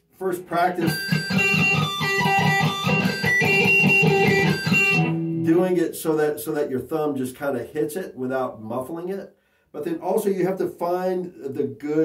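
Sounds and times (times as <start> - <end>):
electric guitar pinched harmonics: 0.8 - 5.5.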